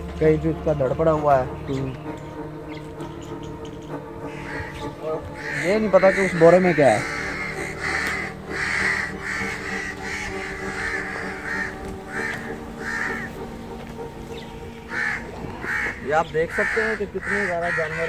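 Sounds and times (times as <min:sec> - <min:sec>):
low background tone: 0:00.0 - 0:18.0
crows cawing: 0:00.6 - 0:18.0.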